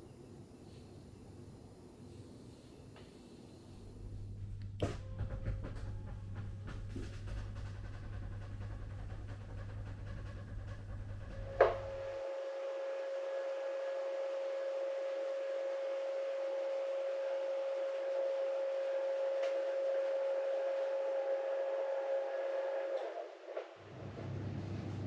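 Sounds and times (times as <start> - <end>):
electric bed motor humming: 3.8 - 23.2.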